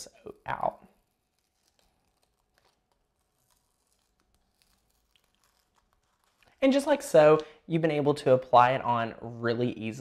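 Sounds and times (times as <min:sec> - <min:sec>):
tape peeling crinkles: 0:00.3 - 0:07.5.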